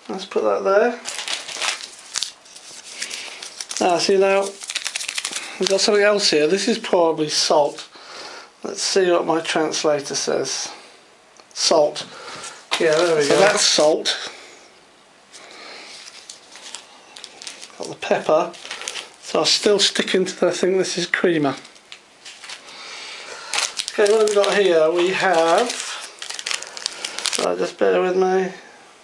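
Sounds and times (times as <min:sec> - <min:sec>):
packets rustling and crinkling: 0:01.0 - 0:06.3, 0:12.0 - 0:14.0, 0:15.3 - 0:20.0, 0:21.4 - 0:27.6.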